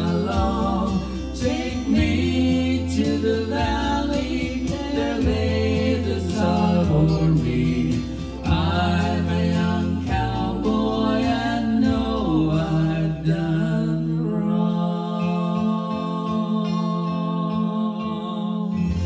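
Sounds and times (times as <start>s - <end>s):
accompaniment with low bass: 0.0s - 17.6s, 18.8s - 19.0s
man and woman singing: 0.0s - 19.0s.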